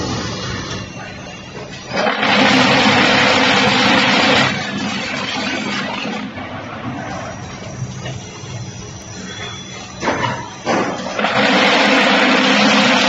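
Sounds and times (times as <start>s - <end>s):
burst of harsh machine noise: 1.9s - 6.2s, 9.9s - 13.0s.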